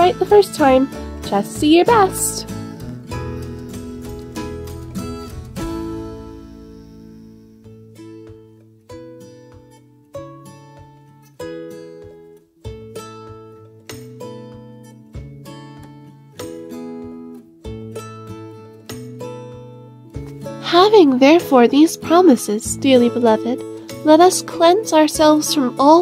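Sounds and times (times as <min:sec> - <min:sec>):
strummed acoustic guitar chords: 0:00.0 - 0:21.6.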